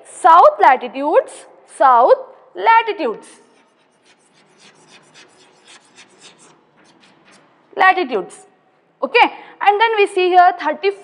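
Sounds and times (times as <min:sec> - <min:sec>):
chalk scratching on chalkboard: 0:03.1 - 0:07.8.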